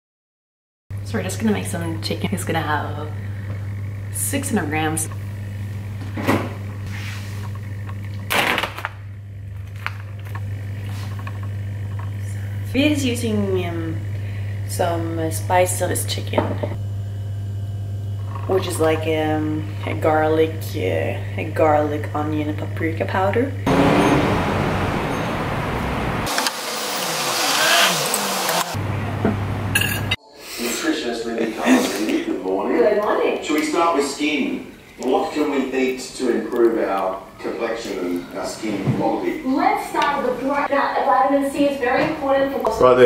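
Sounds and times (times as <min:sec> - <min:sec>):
steady low hum: 0:01.0 - 0:08.3, 0:09.0 - 0:26.3
vehicle passing by: 0:23.7 - 0:29.8.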